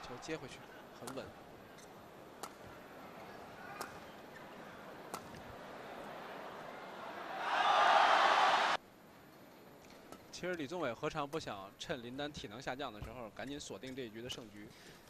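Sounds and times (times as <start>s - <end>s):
crowd cheering: 0.0s - 1.0s, 3.2s - 8.8s
rackets hitting shuttlecock: 1.0s - 2.8s, 3.7s - 5.6s.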